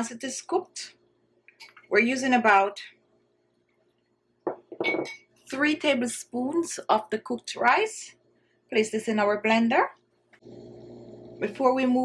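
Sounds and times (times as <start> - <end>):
plastic spoon knocking glass bowl: 4.5 - 5.2.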